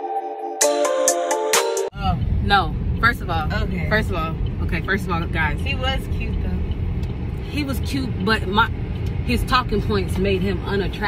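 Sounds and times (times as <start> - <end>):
road and engine rumble in car: 2.0 - 11.0
woman talking: 7.5 - 11.0.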